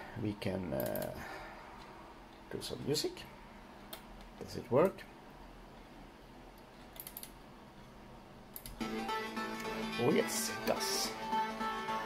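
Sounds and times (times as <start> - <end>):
faint room hum: 0.0 - 12.0
computer tracker music: 8.8 - 12.0.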